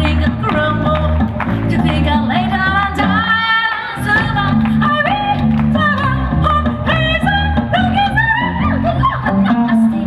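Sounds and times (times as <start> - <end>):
plucked double bass: 0.0 - 10.0.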